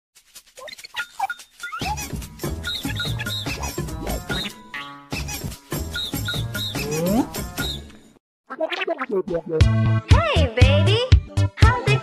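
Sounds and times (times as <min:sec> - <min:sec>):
squeaky cartoon voices chirping: 0:00.6 - 0:07.8
bright music with bass line: 0:09.5 - 0:12.0.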